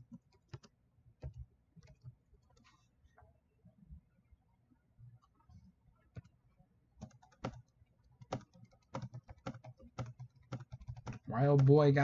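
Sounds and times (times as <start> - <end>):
typing on computer keyboard: 0.2 - 0.7, 7.0 - 11.8.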